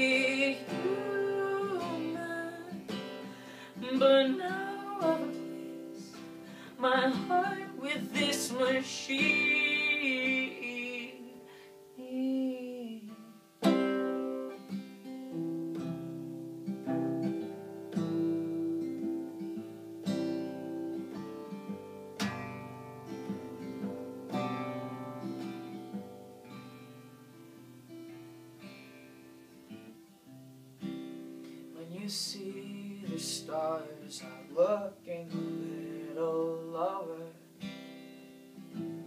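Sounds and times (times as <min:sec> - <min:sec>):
acoustic guitar chords: 0:00.0 - 0:39.0.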